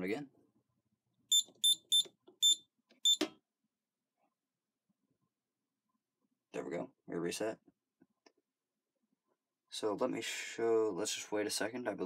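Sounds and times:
keypad beeps: 0:01.3 - 0:03.3.

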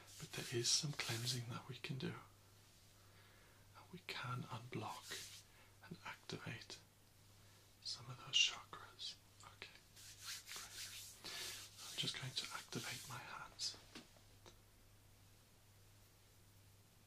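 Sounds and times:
man whispering: 0:00.1 - 0:02.4, 0:03.7 - 0:06.9, 0:07.8 - 0:09.9, 0:11.4 - 0:13.9.

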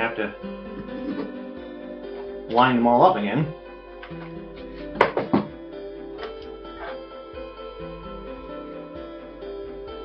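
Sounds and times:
soft background music with guitar: 0:00.0 - 0:10.0.

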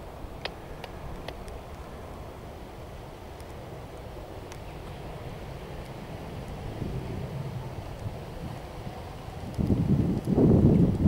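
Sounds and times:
wind rumbling on microphone: 0:00.0 - 0:11.0.

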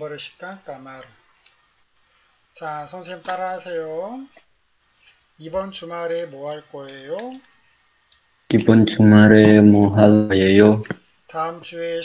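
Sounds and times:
computer mouse clicks: 0:01.3 - 0:01.6, 0:06.2 - 0:08.3
person speaking: 0:08.5 - 0:11.0.

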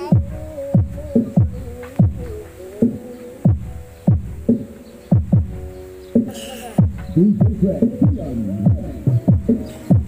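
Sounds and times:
heavy bass kick drums: 0:00.0 - 0:02.4, 0:03.5 - 0:05.7, 0:06.8 - 0:10.0.

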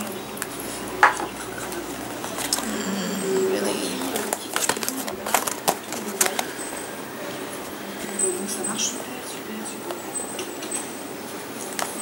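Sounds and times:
plastic packet crinkling: 0:03.6 - 0:06.9.

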